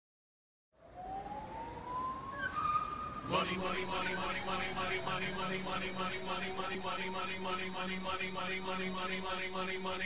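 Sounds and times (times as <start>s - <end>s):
thin tone rising in pitch: 2.4s - 10.0s.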